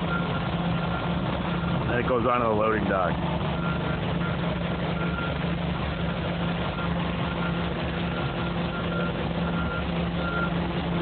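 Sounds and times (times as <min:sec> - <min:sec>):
construction machinery engine running: 0:00.0 - 0:11.0.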